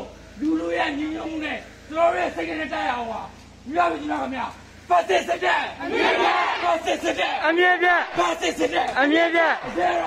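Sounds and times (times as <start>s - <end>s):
crowd shouting a slogan: 3.7s - 10.0s.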